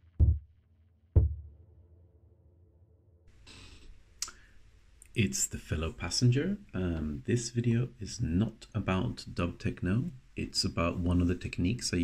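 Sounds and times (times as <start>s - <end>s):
faint hiss-like rustle: 3.3s - 6.1s.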